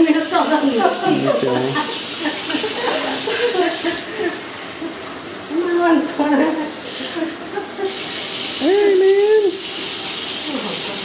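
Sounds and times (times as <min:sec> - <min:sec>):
tap water running into bathtub: 0:00.0 - 0:04.5, 0:05.5 - 0:11.0
short pitched voice: 0:01.1 - 0:01.8.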